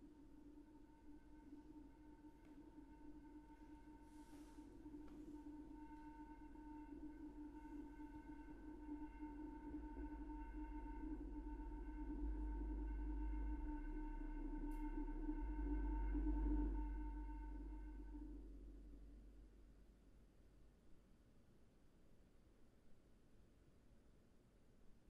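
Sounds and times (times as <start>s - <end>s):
soft chord of sine tones: 0.0s - 21.2s
faint noise: 0.0s - 25.0s.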